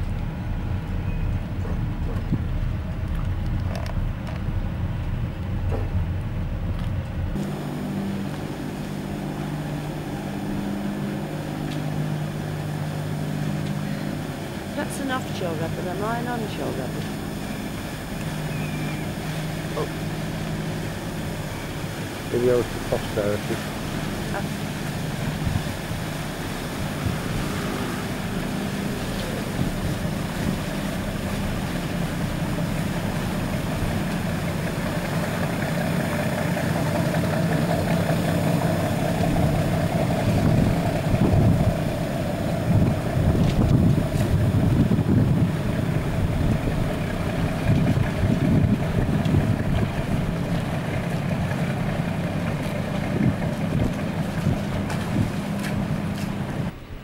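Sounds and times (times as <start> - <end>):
wind buffeting microphone: 0.0 - 7.4, 9.3 - 57.0
boat engines humming: 0.0 - 57.0.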